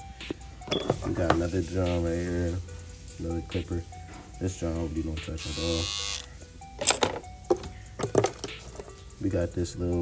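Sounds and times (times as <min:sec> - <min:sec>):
hair clippers set down on wood: 0:06.8 - 0:08.6.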